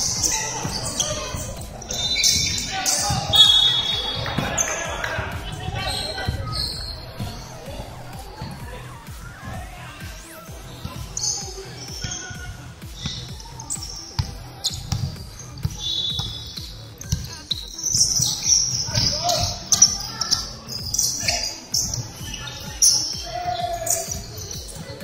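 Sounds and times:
players calling out: 0.0s - 25.0s
sneaker squeaks: 0.0s - 25.0s
basketball bouncing on wooden floor: 14.2s - 18.4s.

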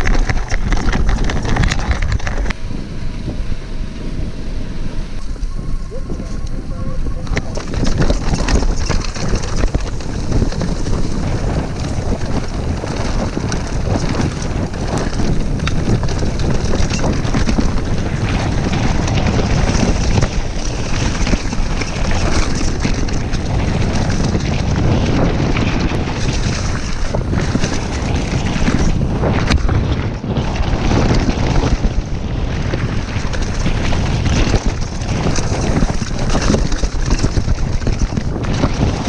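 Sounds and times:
bike clicks and rattles: 0.0s - 2.7s, 5.1s - 39.0s
bike tyres rolling on dirt trail: 0.0s - 39.0s
wind buffeting microphone: 0.0s - 39.0s.

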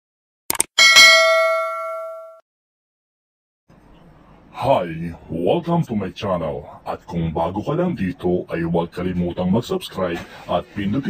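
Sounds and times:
notification bell chime: 0.8s - 2.4s.

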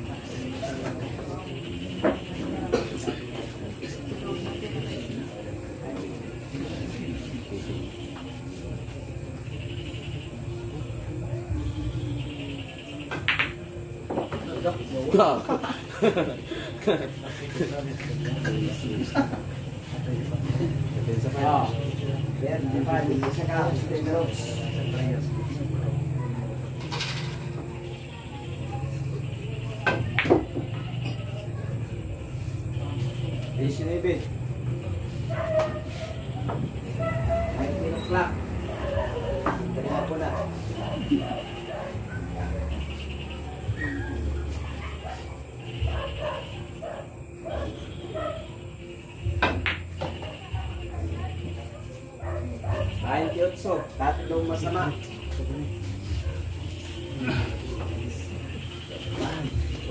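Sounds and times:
background murmur: 0.0s - 59.9s
voices chattering: 0.0s - 59.9s.

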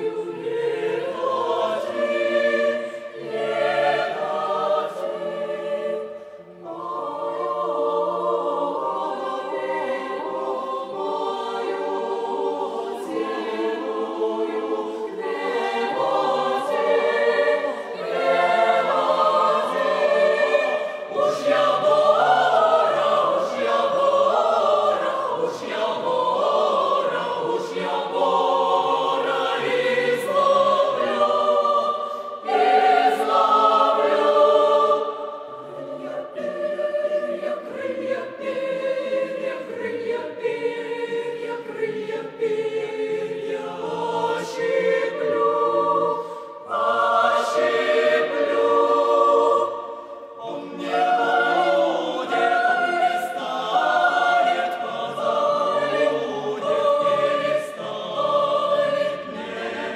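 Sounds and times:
mixed choir singing in harmony: 0.0s - 59.9s.

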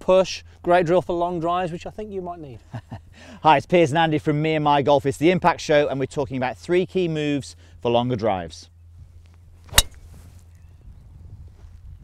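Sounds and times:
golf driver striking ball: 9.7s - 10.1s.

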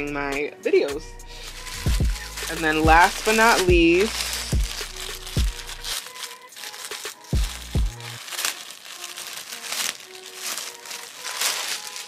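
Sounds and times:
background music: 0.0s - 12.0s
plastic bag crinkling: 1.2s - 12.0s.

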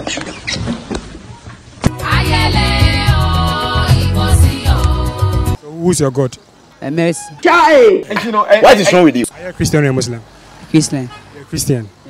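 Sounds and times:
man laughing: 8.0s - 9.1s.

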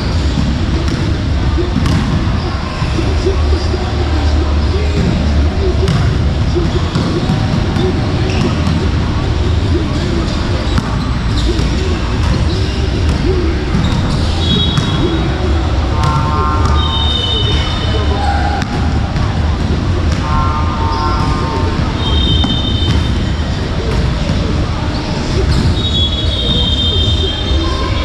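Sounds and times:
background voices: 0.0s - 28.0s.

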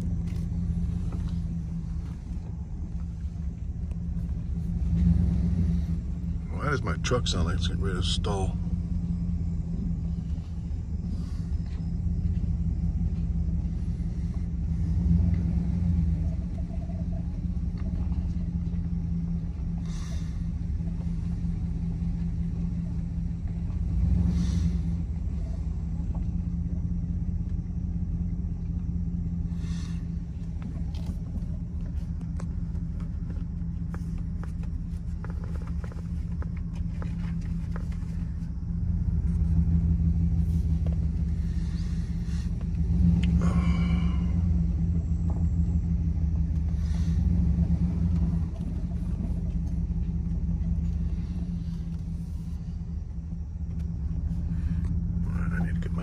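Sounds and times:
truck engine running: 0.0s - 56.0s.

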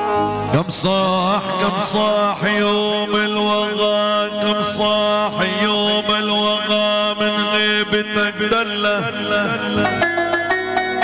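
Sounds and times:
band playing sliding melody: 0.0s - 1.4s, 9.2s - 11.0s.

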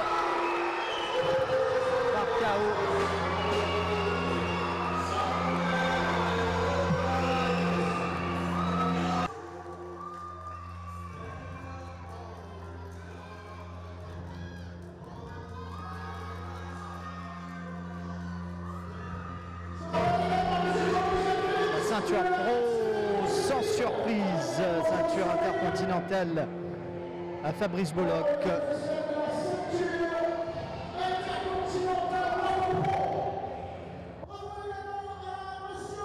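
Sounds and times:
crowd cheering and shouting: 0.0s - 36.0s
music playing: 0.0s - 36.0s.

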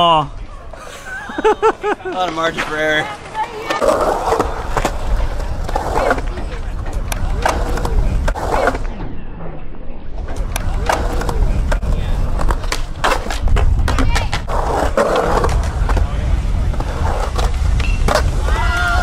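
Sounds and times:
skateboard wheels rumbling on concrete: 1.9s - 9.0s, 10.1s - 19.0s
skateboard deck clacking on ground: 10.3s - 16.0s.

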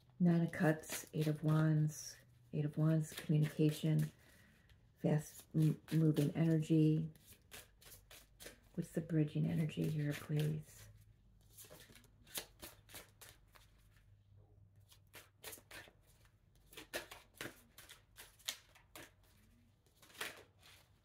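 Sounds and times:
cards being shuffled: 2.9s - 4.4s, 5.2s - 9.0s, 9.6s - 14.0s, 14.9s - 21.0s.

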